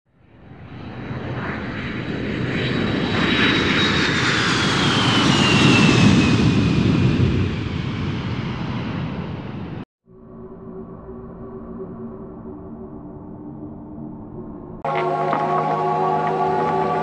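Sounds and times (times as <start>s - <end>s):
aircraft passing overhead: 0.2s - 17.0s.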